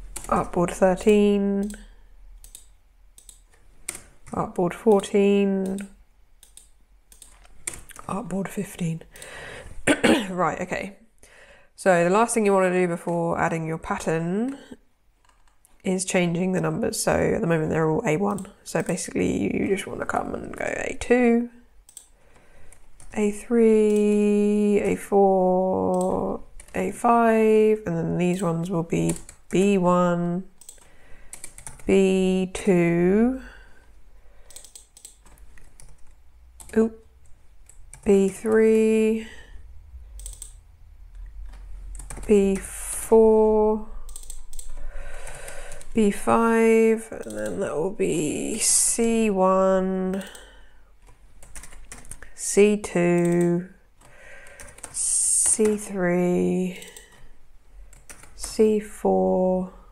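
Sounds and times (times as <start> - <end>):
keyboard typing clicks: 0.1 - 8.2, 21.8 - 25.0, 25.8 - 26.8, 28.2 - 29.9, 30.6 - 32.2, 34.4 - 39.0, 40.1 - 42.8, 44.0 - 47.8, 50.0 - 57.3, 57.9 - 58.7
keyboard key clicks: 44.1 - 44.8.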